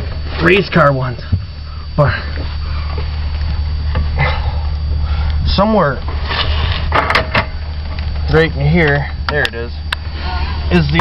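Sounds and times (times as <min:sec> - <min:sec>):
vehicle cabin low rumble: 0:00.0 - 0:11.0.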